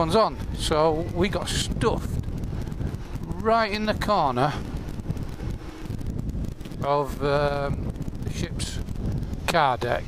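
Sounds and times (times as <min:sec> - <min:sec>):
man talking: 0:00.0 - 0:02.2, 0:03.2 - 0:04.7, 0:06.8 - 0:08.8, 0:09.4 - 0:10.0
motorcycle engine rumbling: 0:00.0 - 0:10.0
wind buffeting microphone: 0:00.0 - 0:10.0.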